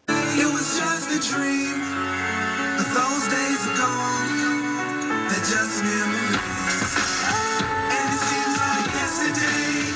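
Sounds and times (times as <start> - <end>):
music on car stereo: 0.0 - 9.9.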